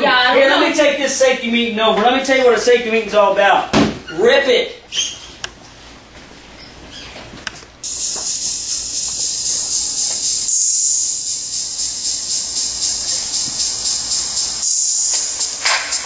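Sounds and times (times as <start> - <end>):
pulsing high-pitched hiss: 7.8 - 16.0.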